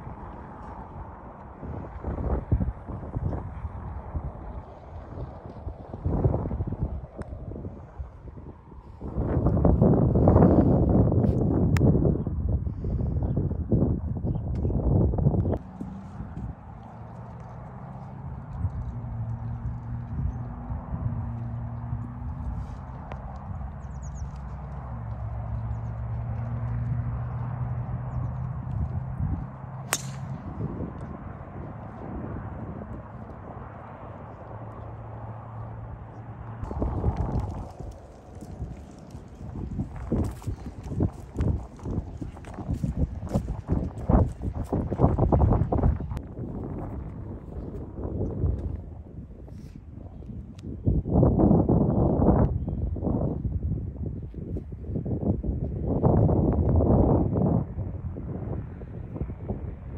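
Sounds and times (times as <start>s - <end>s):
wind buffeting microphone: 0.0s - 59.9s
steady low hum: 15.1s - 46.3s
golf club striking ball: 29.8s - 30.8s.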